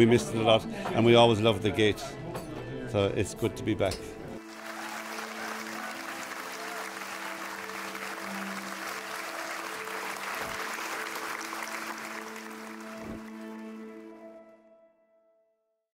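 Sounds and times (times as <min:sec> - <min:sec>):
theatre audience applauding: 0:04.4 - 0:14.1
music of long held notes: 0:04.4 - 0:15.5.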